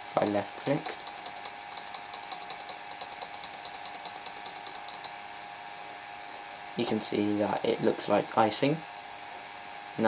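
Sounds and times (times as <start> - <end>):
computer mouse clicking rapidly: 0.0 - 5.2
computer hum: 0.0 - 6.0.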